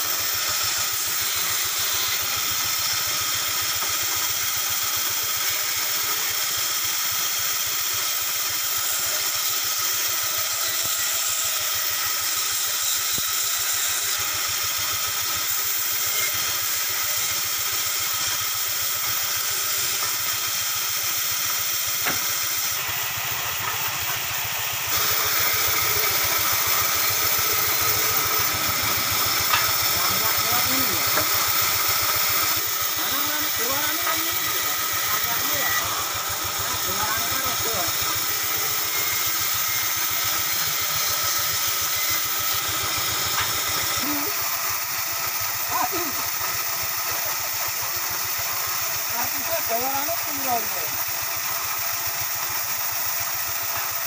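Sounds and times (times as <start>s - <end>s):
band saw cutting wood: 0.0s - 54.0s.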